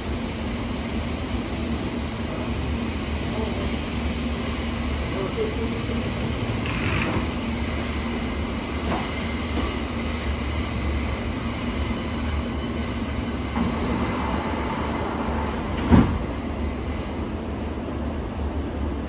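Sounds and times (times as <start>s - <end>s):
train electrical hum and whine: 0.0s - 19.0s
sliding doors closing with thump: 6.6s - 7.3s, 15.7s - 16.2s.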